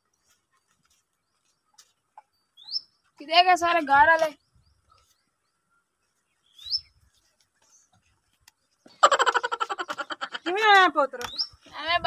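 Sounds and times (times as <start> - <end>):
bird chirp: 0.0 - 10.6, 11.2 - 11.9.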